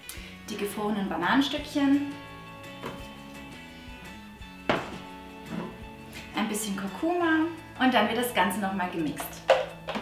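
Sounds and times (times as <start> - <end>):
background music: 0.0 - 10.0
frozen fruit knocking into plastic bowl: 9.2 - 10.0.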